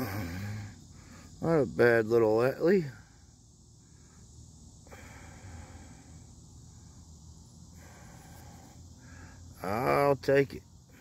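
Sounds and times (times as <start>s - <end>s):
soft breathing: 0.0s - 1.4s, 2.9s - 9.6s
faint high hiss: 0.0s - 11.0s.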